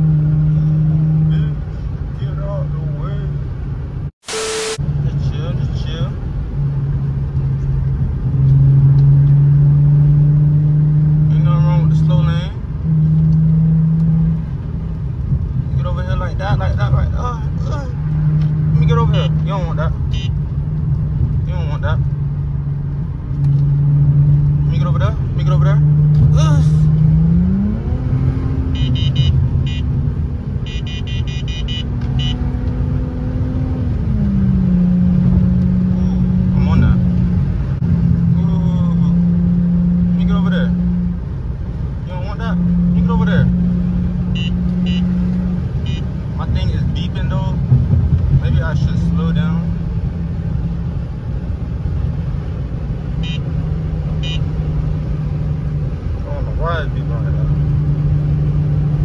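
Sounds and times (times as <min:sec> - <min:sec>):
car engine drone from inside cabin: 0:00.0 - 0:59.0.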